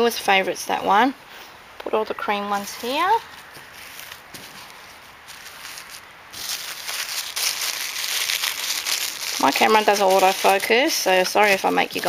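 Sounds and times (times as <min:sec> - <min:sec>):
fabric rustling and crackling: 0:02.5 - 0:12.0.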